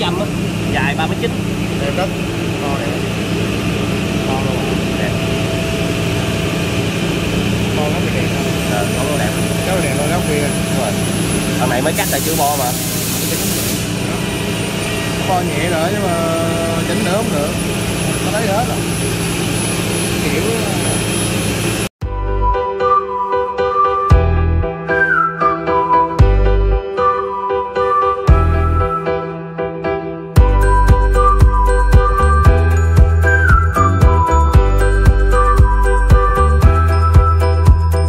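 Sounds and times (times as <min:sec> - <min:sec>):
high machine whine: 0:00.0 - 0:21.9
woodworking machinery drone: 0:00.0 - 0:21.9
music with held notes: 0:22.0 - 0:38.0.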